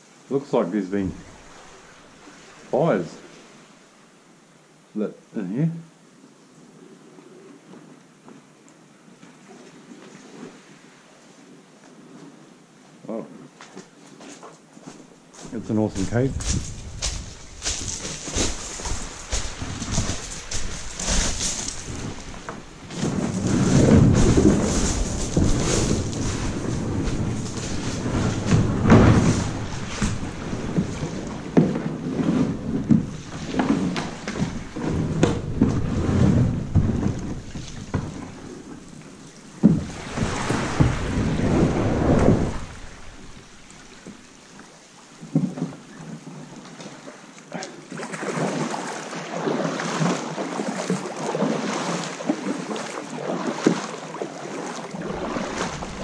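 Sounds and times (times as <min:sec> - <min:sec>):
kayak hull scraping over pebbles: 0:00.9 - 0:02.3, 0:15.4 - 0:47.1, 0:48.0 - 0:56.0.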